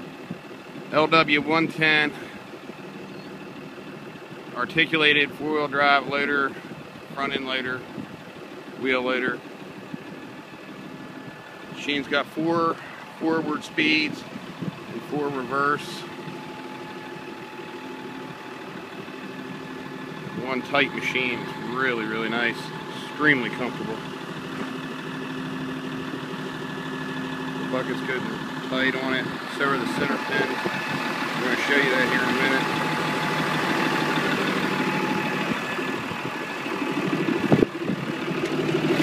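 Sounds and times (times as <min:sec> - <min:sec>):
diesel engine idling: 0:00.0 - 0:39.0.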